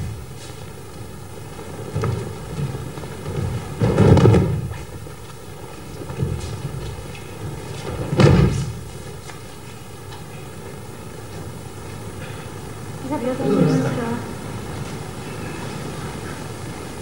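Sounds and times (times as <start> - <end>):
bodies thudding on stage floor: 1.6 - 5.2, 5.9 - 9.2.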